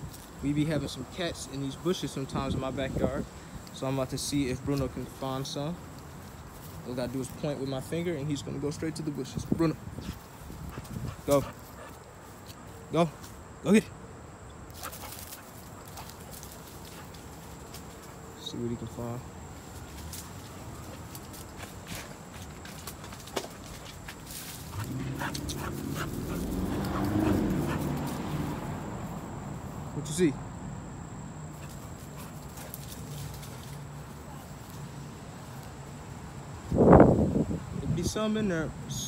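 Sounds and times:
man calling to dog: 0:38.0 - 0:39.0.

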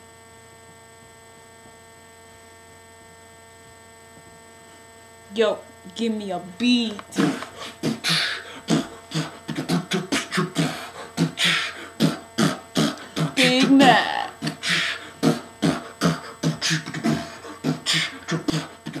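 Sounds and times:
beatboxing into cupped hands: 0:06.8 - 0:19.0
wavering vocal sound: 0:07.0 - 0:19.0.

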